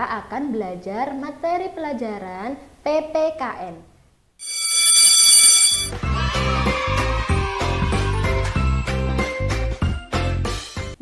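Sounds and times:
electric school bell ringing: 4.4s - 6.0s.

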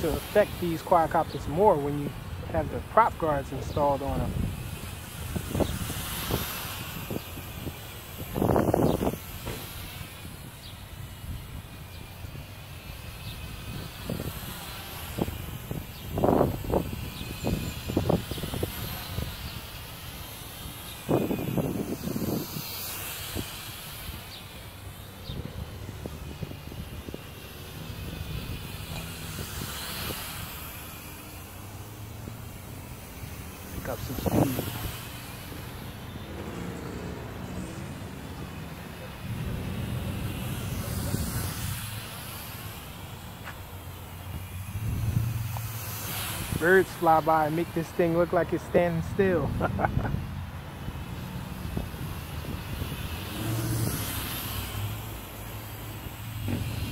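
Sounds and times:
wind buffeting microphone: 0.0s - 43.0s, 44.2s - 55.1s
steady hiss: 0.0s - 56.9s.

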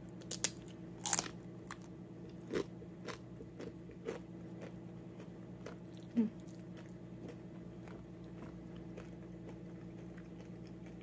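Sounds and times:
tortilla chip crunching: 0.2s - 4.7s
chewing: 1.0s - 11.0s.

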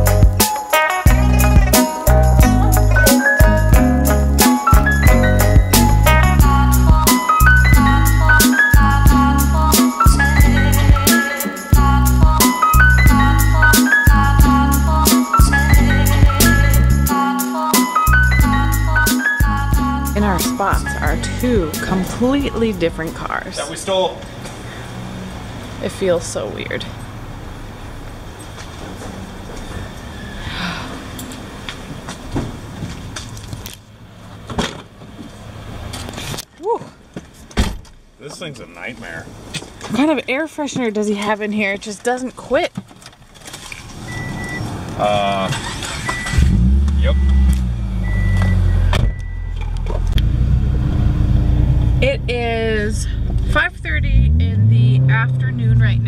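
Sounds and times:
parking garage hum: 18.1s - 56.0s
car cabin engine and road drone: 19.6s - 30.0s, 42.9s - 56.0s
car door shutting: 37.5s - 38.0s, 42.9s - 50.3s
high electronic beep: 44.1s - 44.6s, 46.0s - 46.4s, 47.0s - 49.7s.

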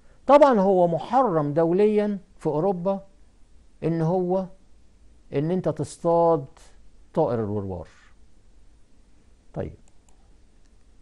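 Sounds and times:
computer mouse clicks: 9.8s - 10.9s.

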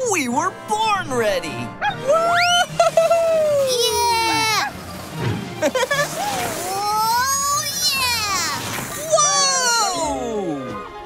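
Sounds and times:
background music: 0.0s - 11.0s
cartoon whoa cry: 2.0s - 4.6s, 9.0s - 10.4s.

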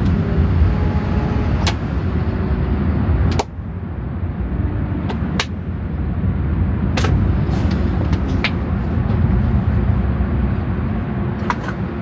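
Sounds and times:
car wash machinery rumble: 0.0s - 12.0s.

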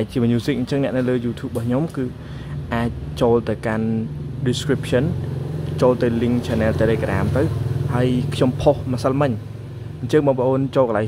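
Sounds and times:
person talking: 0.0s - 9.4s, 10.0s - 11.0s.

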